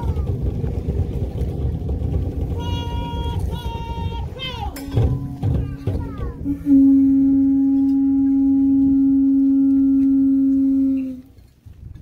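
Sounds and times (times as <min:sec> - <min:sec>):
conch shell trumpet blowing: 0:06.4 - 0:11.3.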